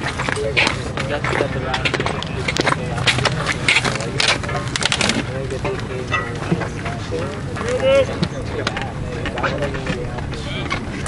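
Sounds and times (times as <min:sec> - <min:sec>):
people shouting and chattering: 0:00.0 - 0:11.0
steady background noise: 0:00.0 - 0:11.0.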